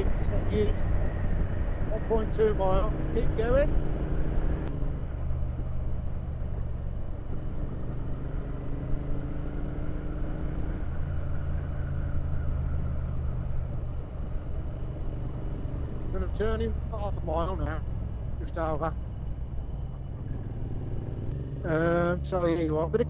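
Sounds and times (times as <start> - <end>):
motorcycle engine running: 0.0 - 23.0
wind and road noise: 0.0 - 23.0.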